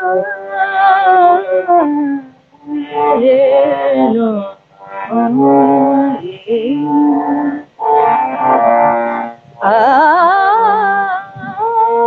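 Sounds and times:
woman singing classical vocals: 0.0s - 8.6s, 9.6s - 12.0s.

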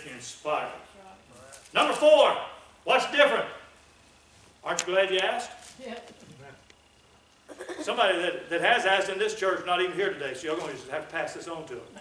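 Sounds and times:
man speaking: 0.0s - 0.8s, 1.7s - 3.7s, 7.8s - 12.0s.

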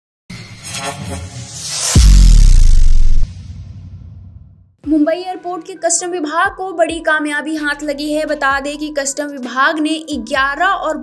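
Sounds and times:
deep boom: 1.5s - 4.7s.

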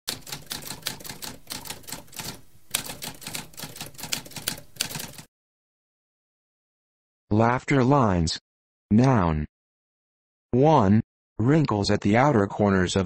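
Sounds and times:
typewriter keystroke clicks: 0.1s - 5.3s.

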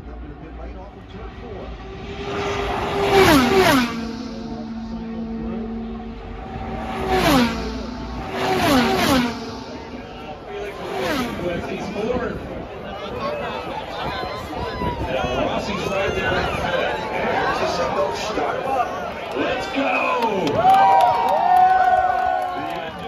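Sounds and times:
race cars passing by: 0.0s - 23.0s.

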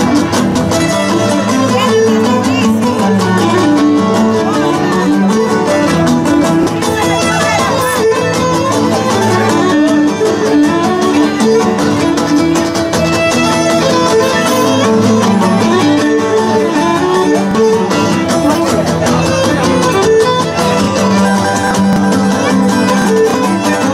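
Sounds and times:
bowed lyra melody: 0.0s - 23.9s
strummed lutes: 0.0s - 23.9s.

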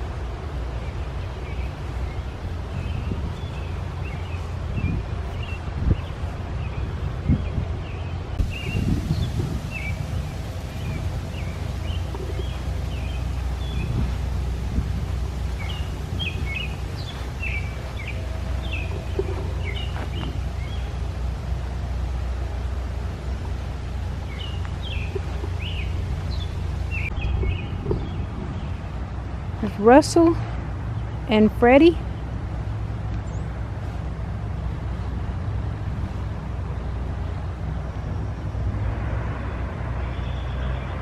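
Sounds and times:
songbirds chirping: 0.3s - 35.3s, 40.0s - 41.0s
low rumble: 2.6s - 29.8s.

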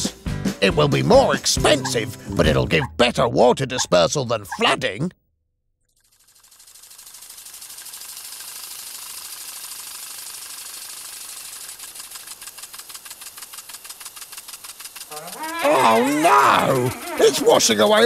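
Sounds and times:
water sprinklers hissing and ticking: 5.9s - 18.0s.

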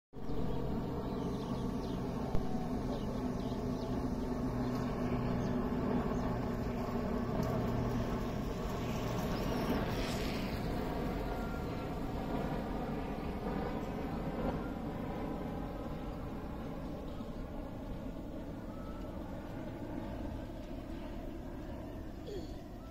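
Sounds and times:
turboprop aircraft flying overhead: 0.2s - 22.9s.

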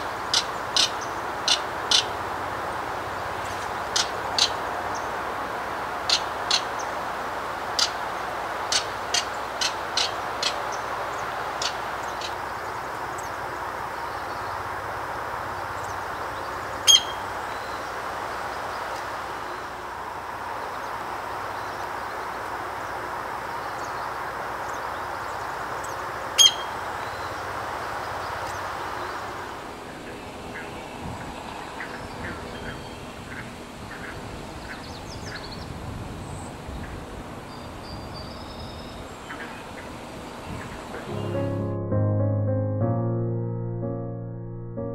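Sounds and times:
sharp bird calls: 0.0s - 2.3s, 3.1s - 5.2s, 6.0s - 7.0s, 7.7s - 14.6s, 15.6s - 19.8s, 23.6s - 29.3s, 29.9s - 35.8s.

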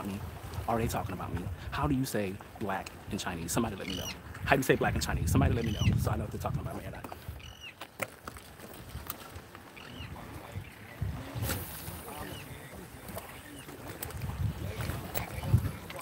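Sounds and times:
light wind: 0.0s - 16.0s
water at shoreline: 0.0s - 16.0s
distant voices: 9.6s - 16.0s.

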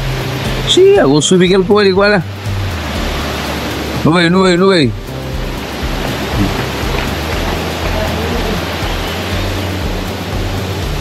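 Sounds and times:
water rushing at a dam: 0.0s - 11.0s.

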